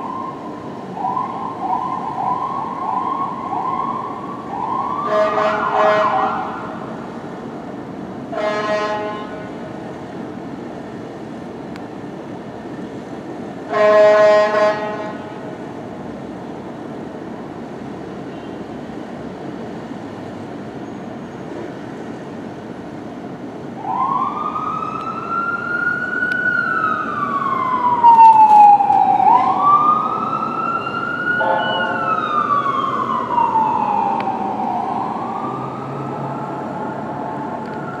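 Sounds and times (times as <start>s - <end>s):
fire engine siren wailing: 0.0s - 7.6s, 13.7s - 15.9s, 23.6s - 38.0s
city traffic noise: 0.0s - 38.0s
steady horn tone: 8.4s - 9.5s, 31.4s - 32.1s.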